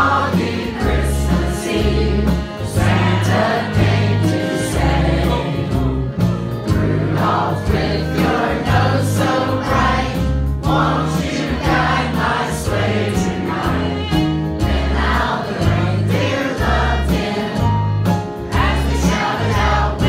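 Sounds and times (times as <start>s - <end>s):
voices singing into microphones: 0.0s - 20.0s.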